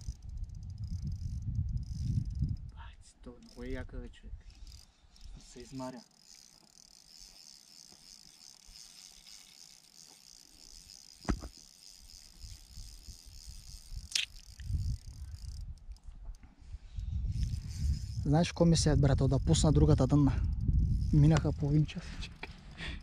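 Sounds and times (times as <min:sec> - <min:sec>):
fishing reel ratcheting whirr: 0:00.0 - 0:16.4, 0:17.0 - 0:23.0
sharp clicks: 0:10.0 - 0:16.4, 0:20.4 - 0:21.6.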